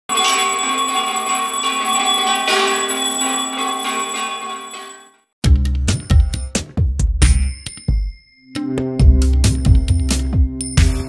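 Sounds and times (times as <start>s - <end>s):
bells ringing: 0.1s - 5.2s, 7.3s - 8.9s.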